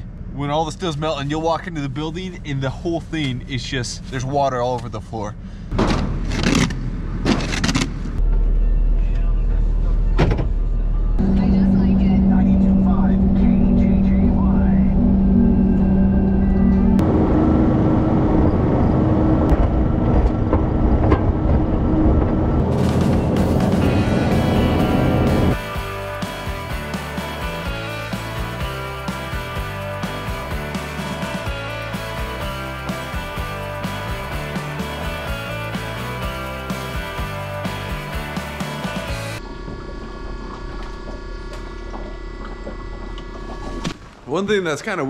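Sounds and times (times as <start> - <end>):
diesel engine droning: 0.0 - 43.8
background music: 22.7 - 39.4.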